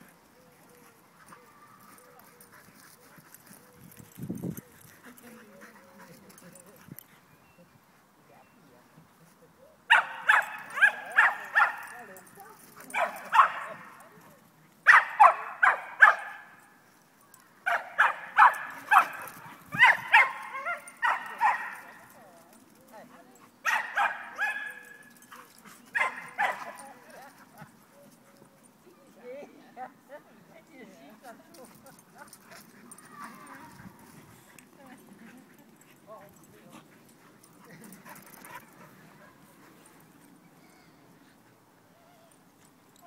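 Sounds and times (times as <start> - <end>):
dogs barking in play: 9.9 - 12.0, 12.6 - 14.0, 14.8 - 16.8, 17.6 - 22.2, 23.4 - 28.3.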